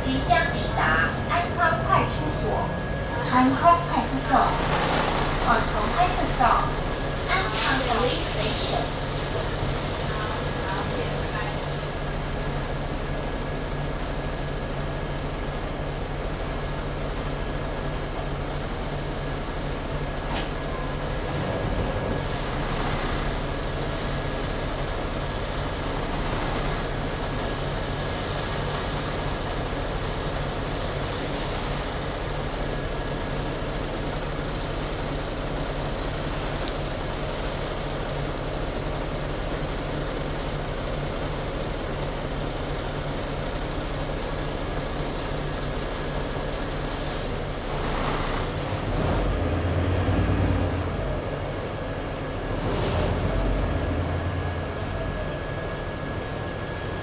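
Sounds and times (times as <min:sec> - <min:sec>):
bus engine running: 0:00.0 - 0:57.0
road and cabin noise: 0:00.0 - 0:57.0.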